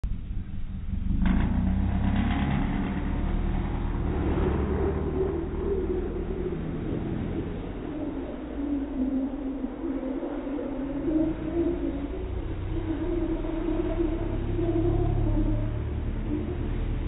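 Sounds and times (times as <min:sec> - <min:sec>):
car engine accelerating: 0:00.0 - 0:17.0.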